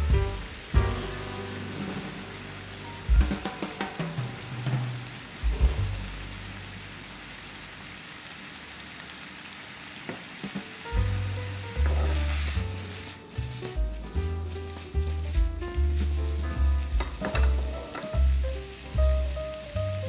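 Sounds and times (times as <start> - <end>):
background music with bass: 0.0 - 6.7, 10.9 - 20.0
meat and onions sizzling in a pan: 0.0 - 20.0.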